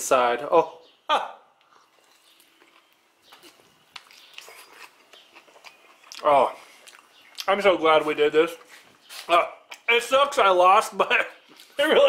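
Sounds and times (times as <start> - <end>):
wet mouth chewing clicks: 1.6 - 7.5.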